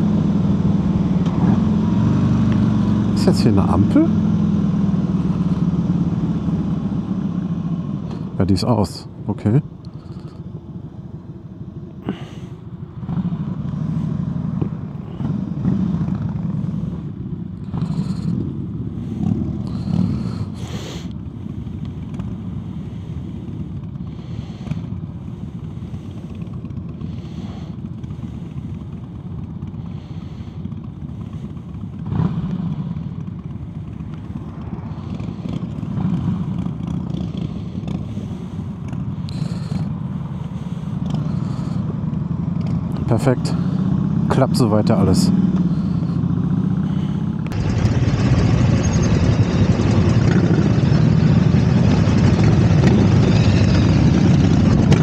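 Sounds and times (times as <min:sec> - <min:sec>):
motorcycles riding past: 0:00.0 - 0:08.8, 0:09.9 - 0:55.0
motorcycle engine idling: 0:02.1 - 0:55.0.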